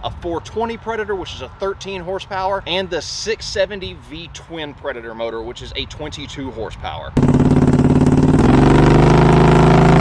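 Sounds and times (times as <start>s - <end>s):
boat motor running at high throttle: 7.2s - 10.0s.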